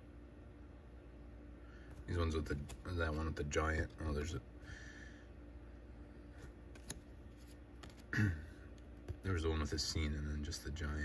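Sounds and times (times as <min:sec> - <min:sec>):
cardboard cards scraping and ticking: 0:06.4 - 0:08.1.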